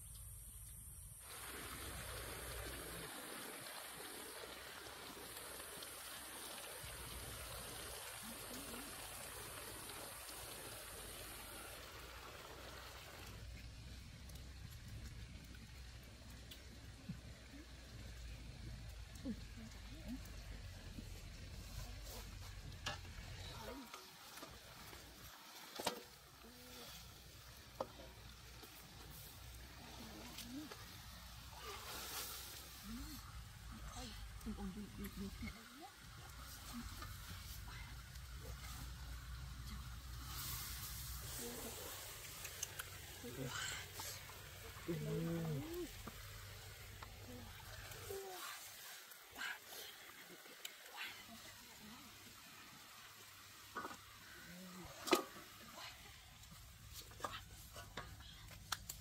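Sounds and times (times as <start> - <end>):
meat sizzling in oil: 1.1 - 19.1, 35.2 - 44.9
utensil clicking against wok: 42.2 - 43.2.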